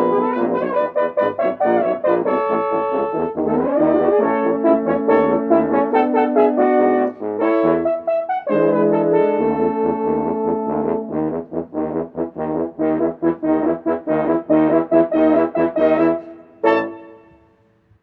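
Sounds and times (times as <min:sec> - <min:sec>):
french horns playing in harmony: 0:00.0 - 0:17.4.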